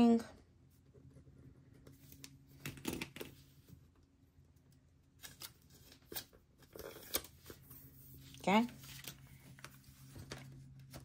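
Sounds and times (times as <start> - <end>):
paper rustling: 5.2 - 11.0.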